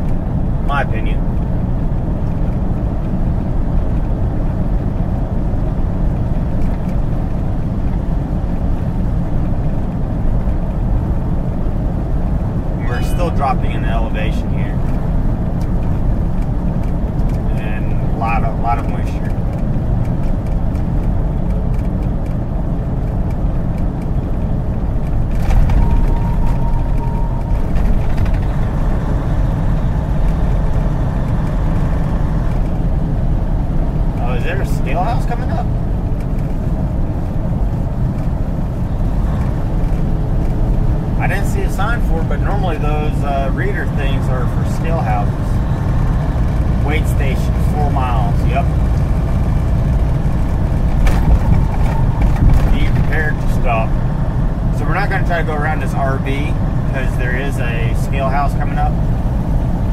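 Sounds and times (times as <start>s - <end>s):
road noise: 0.0s - 59.9s
truck engine drone: 0.0s - 59.9s.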